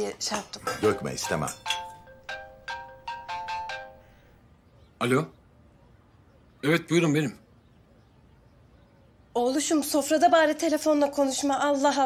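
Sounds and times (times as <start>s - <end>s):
mobile phone ringtone melody: 0.8s - 4.3s.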